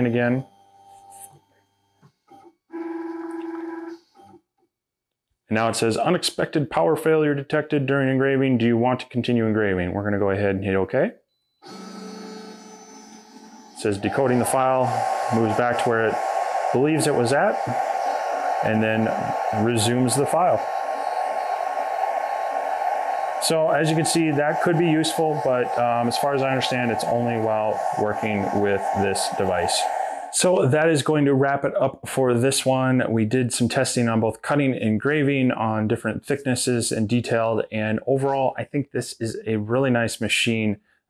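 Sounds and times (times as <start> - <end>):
brief motor whirs: 11.5 - 13.8
stepper motor whine: 11.6 - 31.0
airy whir of fans: 11.7 - 31.3.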